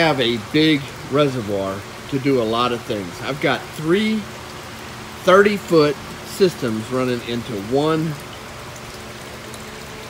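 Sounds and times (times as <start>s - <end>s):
water trickling: 0.0s - 10.0s.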